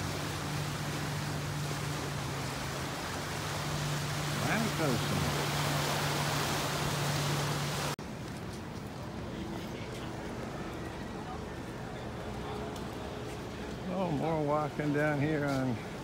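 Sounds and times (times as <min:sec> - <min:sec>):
street ambience: 0:00.0 - 0:16.0
surf at seawall: 0:00.0 - 0:16.0
footsteps on pavement: 0:08.0 - 0:10.8, 0:11.6 - 0:13.9.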